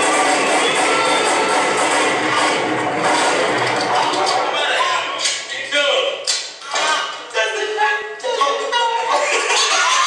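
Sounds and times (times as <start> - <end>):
drums: 0.0 - 4.4
distorted guitar: 0.0 - 4.6.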